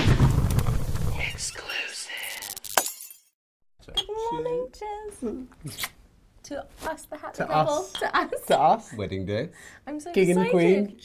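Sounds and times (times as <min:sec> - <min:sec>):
sharp crash: 0:00.0 - 0:01.2.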